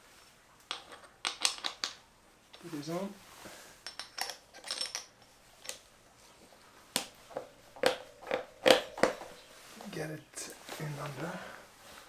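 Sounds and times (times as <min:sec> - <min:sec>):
metal tools clicking and knocking: 0:03.8 - 0:05.8.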